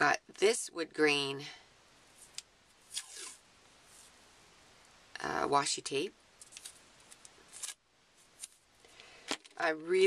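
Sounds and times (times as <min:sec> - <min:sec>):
tape crackling: 0:02.2 - 0:04.1, 0:06.4 - 0:09.6.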